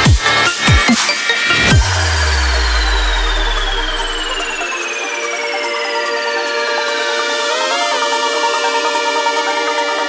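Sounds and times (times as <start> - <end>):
high synth tone sliding downward: 1.0 - 8.1
deep held bass note: 1.6 - 4.7.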